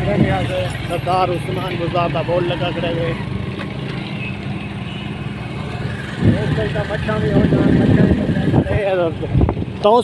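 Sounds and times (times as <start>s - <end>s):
road and wind noise: 0.0s - 10.0s
vehicle engine running: 0.0s - 10.0s.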